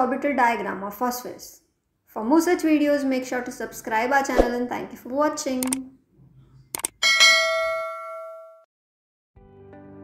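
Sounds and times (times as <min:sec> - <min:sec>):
quick clicks: 0:05.6 - 0:05.8, 0:06.7 - 0:07.0
bright bell ding: 0:07.0 - 0:08.6.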